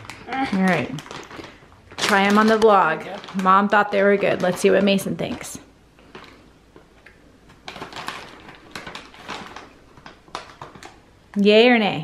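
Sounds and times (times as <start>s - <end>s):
candy bag crinkling: 0.0s - 11.7s.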